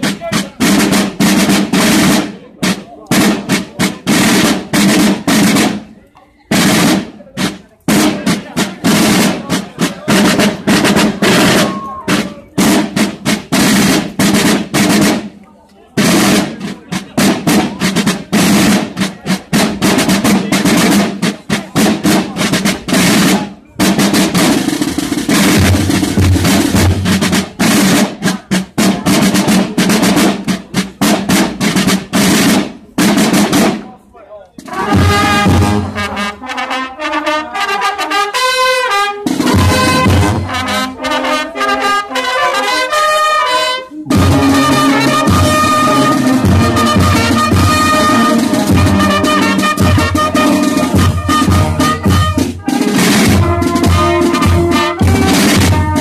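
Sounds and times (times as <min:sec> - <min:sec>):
snare drums playing marching beats: 0:00.0 - 0:05.9, 0:06.5 - 0:15.4, 0:16.0 - 0:34.0, 0:34.6 - 0:56.0.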